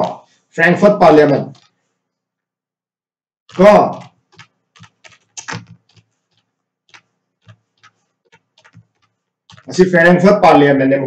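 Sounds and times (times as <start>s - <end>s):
computer keyboard typing: 1.4s - 1.8s, 3.5s - 10.0s.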